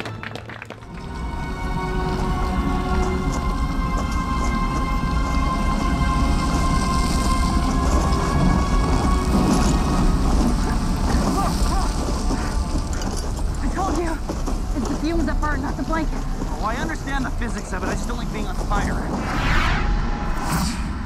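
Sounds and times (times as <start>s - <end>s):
background music: 0.0s - 21.0s
flames burning with low rumble: 0.8s - 21.0s.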